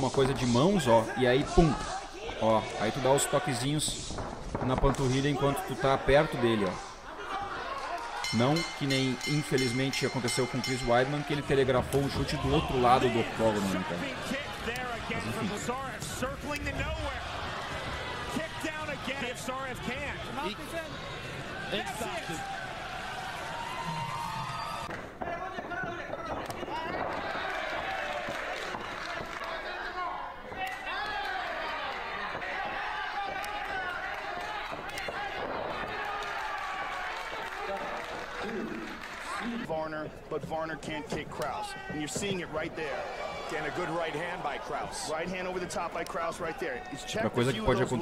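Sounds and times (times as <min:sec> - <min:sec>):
arena crowd noise: 0:00.0 - 0:48.0
voices talking: 0:08.2 - 0:22.5.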